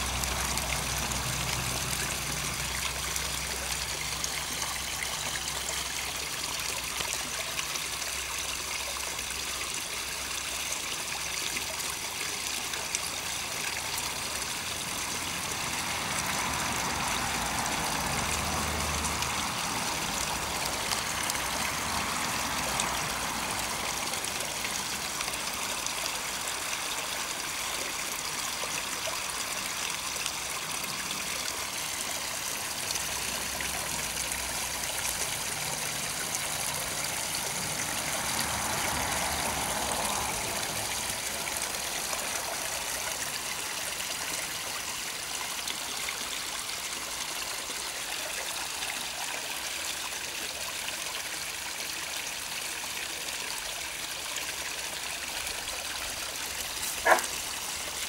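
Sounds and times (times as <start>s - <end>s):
water trickling over rocks: 0.0s - 58.0s.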